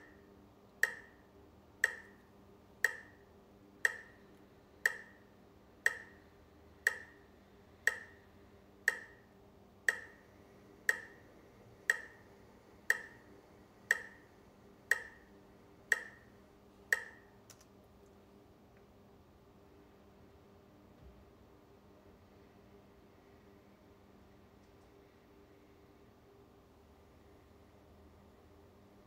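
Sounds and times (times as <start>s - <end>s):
metronome ticking: 0.0s - 0.2s, 0.8s - 9.3s, 9.9s - 10.2s, 10.8s - 14.3s, 14.9s - 17.4s.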